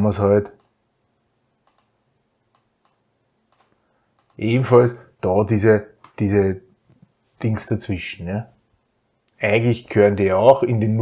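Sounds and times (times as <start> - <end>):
computer mouse clicks: 0.5 - 0.8, 1.6 - 4.4.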